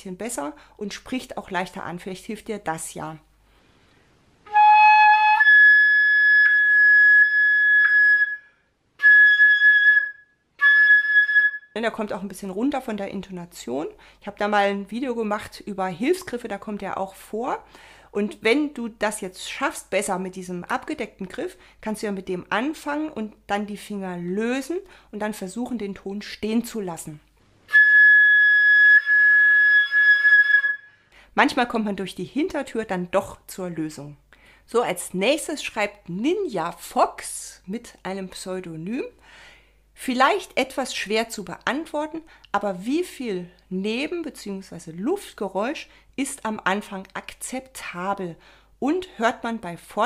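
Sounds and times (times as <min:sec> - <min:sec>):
flute playing high note: 0:04.5 - 0:11.7, 0:27.7 - 0:31.0.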